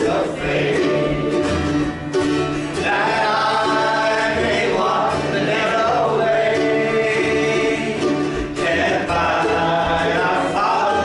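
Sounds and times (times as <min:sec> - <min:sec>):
acoustic guitar: 0:00.0 - 0:11.0
congregation singing: 0:00.0 - 0:11.0.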